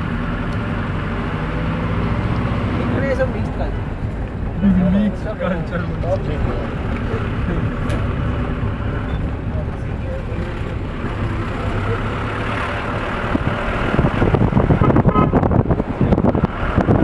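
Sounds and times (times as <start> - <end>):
car engine and road rumble: 0.0 - 17.0
irregular buffeting: 0.0 - 17.0.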